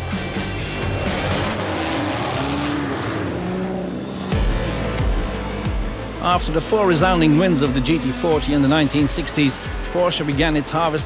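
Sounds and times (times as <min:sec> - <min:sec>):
deep loud engine: 0:00.0 - 0:10.2
background music: 0:00.0 - 0:11.0
racing car engine: 0:00.0 - 0:11.0.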